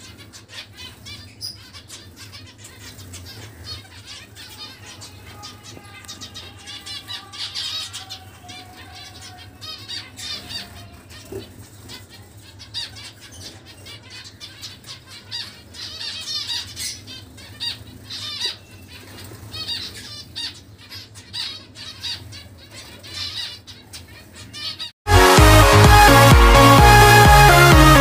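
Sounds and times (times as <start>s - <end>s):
finches chirping: 0.0s - 24.9s
electronic dance music: 25.1s - 28.0s.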